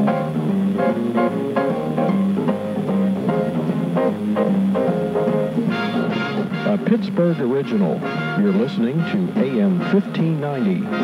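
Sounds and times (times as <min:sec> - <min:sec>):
instrumental music on radio: 0:00.0 - 0:11.0.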